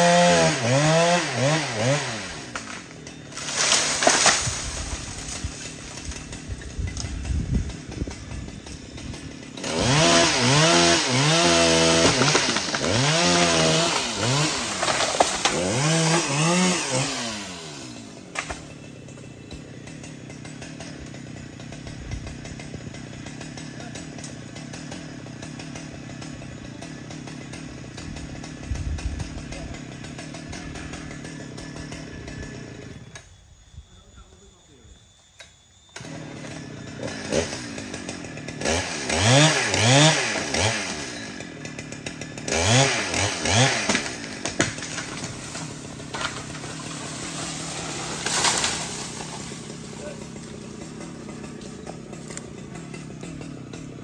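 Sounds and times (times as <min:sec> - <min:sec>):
chainsaw revving and idling: 0:00.0 - 0:33.4, 0:35.9 - 0:54.0.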